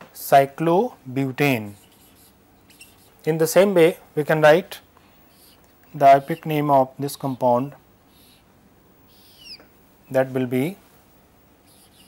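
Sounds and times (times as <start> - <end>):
marker pen scratching on whiteboard: 1.4 - 3.2
marker pen squeak: 1.6 - 3.2, 9.1 - 9.6, 11.7 - 12.0.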